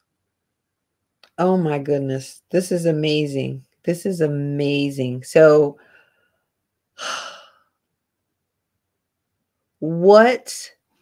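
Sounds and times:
breathy sigh: 0:07.0 - 0:07.7.

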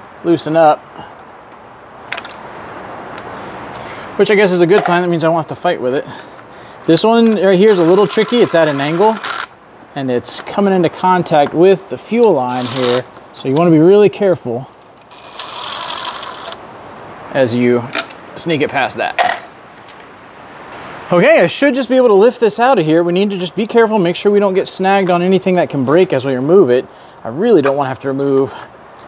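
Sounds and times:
heavy rain hiss: 0:00.0 - 0:29.0.

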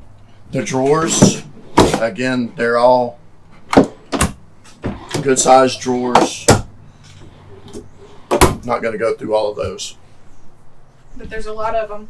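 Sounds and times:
drawers opening and shutting: 0:00.6 - 0:02.2, 0:03.5 - 0:08.6.

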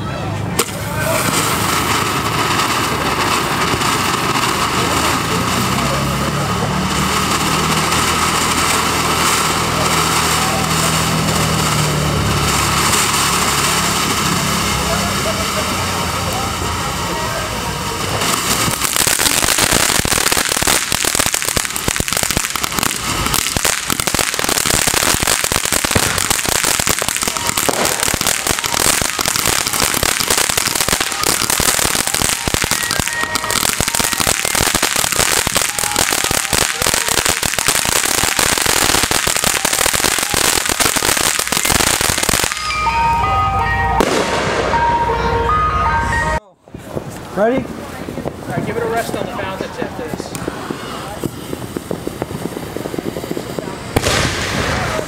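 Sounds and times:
firework fountain hissing and crackling: 0:00.0 - 0:55.0.

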